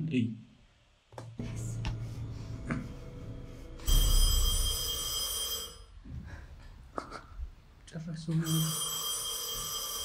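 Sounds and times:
telephone ringing: 3.8 - 6.0, 8.4 - 10.0.

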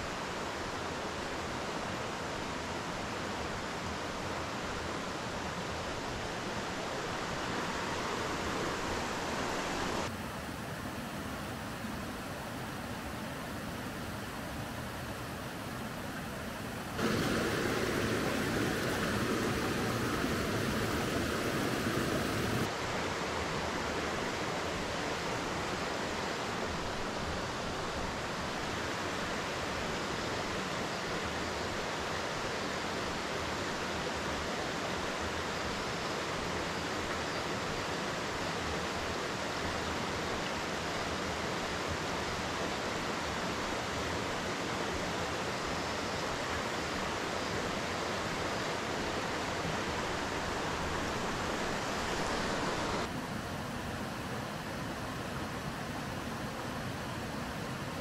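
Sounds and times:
river water rushing: 0.0 - 33.8, 38.1 - 58.0.

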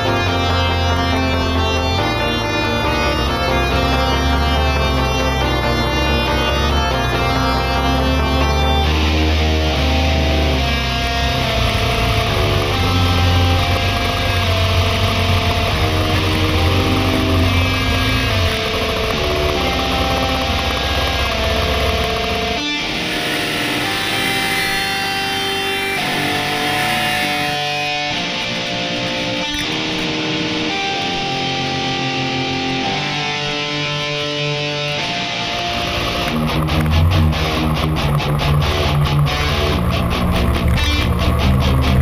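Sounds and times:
guitar song with heavy bass: 0.0 - 42.0.

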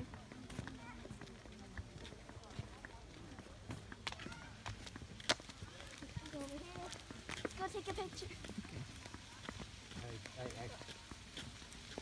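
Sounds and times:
faint voices: 0.0 - 12.0
footsteps on flagstone: 0.0 - 12.0.

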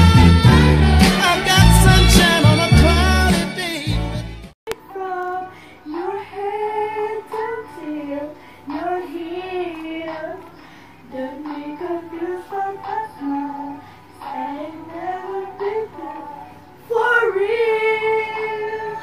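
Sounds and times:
woman singing unaccompanied: 4.7 - 19.0.

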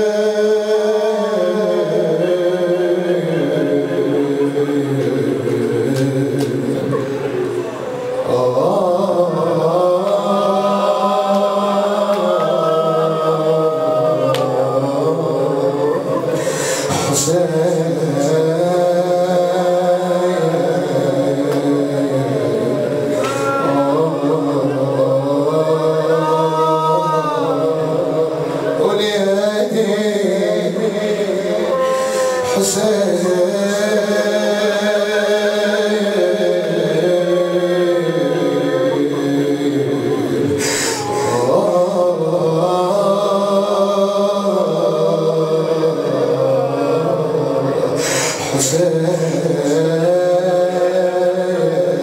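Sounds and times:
man chanting a lament: 0.0 - 52.0.

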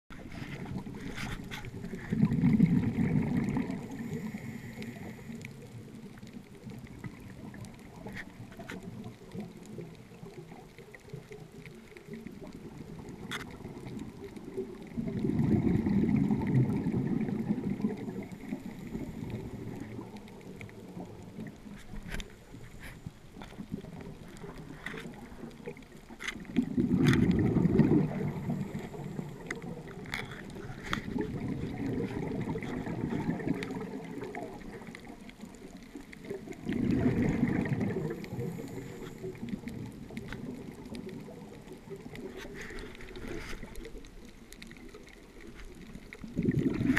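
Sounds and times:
underwater breath bubbles gurgling: 0.1 - 46.9
faint hiss: 0.2 - 46.9.

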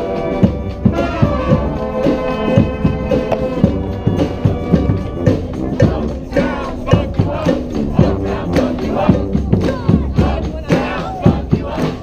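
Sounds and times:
brass band playing funk: 0.0 - 12.0
steady drum beat: 0.0 - 12.0
group of voices shouting: 5.8 - 12.0.

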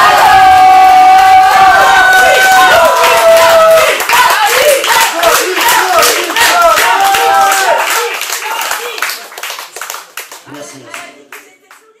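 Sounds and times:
scattered hand claps: 2.4 - 12.0.

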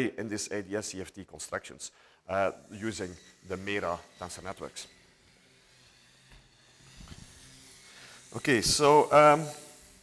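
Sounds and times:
faint hiss: 6.6 - 10.0.

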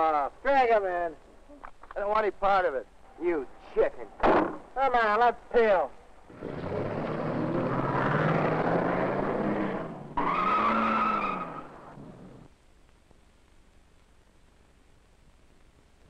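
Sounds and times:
tyres squealing: 6.3 - 12.4
car engine revving: 6.3 - 12.5.

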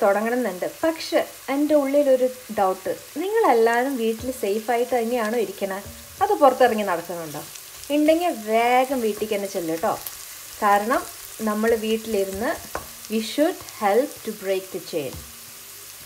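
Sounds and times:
onion and garlic sizzling in oil: 0.0 - 16.0
person talking: 1.5 - 10.0
wooden spoon stirring pot: 3.6 - 15.6.

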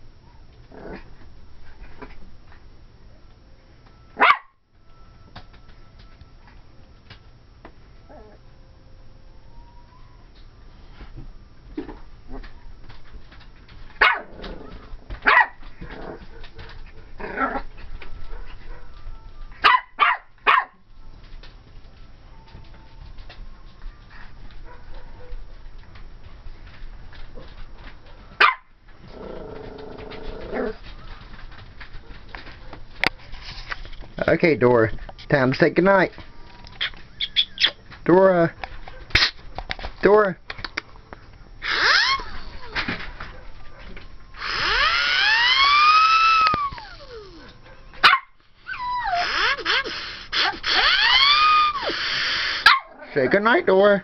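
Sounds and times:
puppy growling: 0.7 - 1.2, 8.1 - 8.4, 14.1 - 15.2, 15.8 - 17.9, 29.0 - 30.9, 41.6 - 43.0, 44.4 - 47.7, 48.7 - 53.4
puppy yapping: 4.2 - 4.5, 14.0 - 14.4, 15.2 - 15.6, 19.6 - 20.8, 28.4 - 28.7, 41.6 - 53.2
puppy barking: 4.2 - 4.6, 14.0 - 14.3, 15.2 - 15.6, 19.6 - 20.8, 28.4 - 28.7, 46.8 - 48.4, 52.6 - 53.2.

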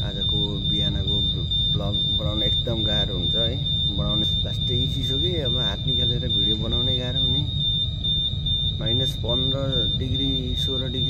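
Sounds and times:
person talking: 0.0 - 7.5, 8.8 - 11.0
high-pitched whine: 0.0 - 11.0
low rumble: 0.0 - 11.0.

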